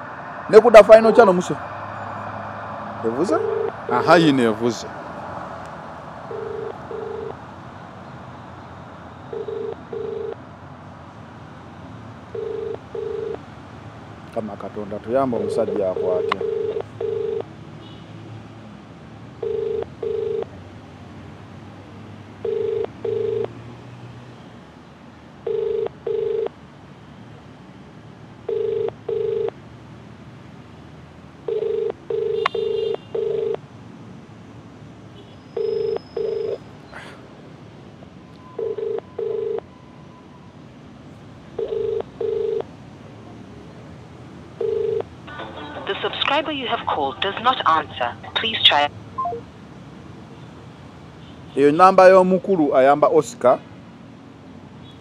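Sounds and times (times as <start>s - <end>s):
phone ringback tone: 3.2s - 4.1s, 6.3s - 7.4s, 9.3s - 10.4s, 12.3s - 13.4s, 15.9s - 17.5s, 19.4s - 20.5s, 22.4s - 23.6s, 25.4s - 26.5s, 28.5s - 29.6s, 31.5s - 33.6s, 35.6s - 36.6s, 38.5s - 39.7s, 41.6s - 42.7s, 44.6s - 45.7s.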